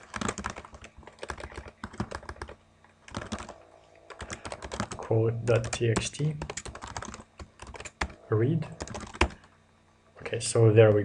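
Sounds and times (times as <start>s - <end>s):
computer keyboard typing: 0.0s - 8.2s, 8.8s - 9.5s.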